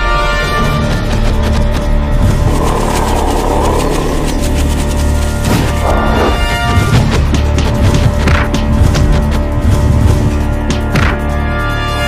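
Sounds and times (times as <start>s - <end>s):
dramatic action soundtrack music: 0.0s - 12.0s.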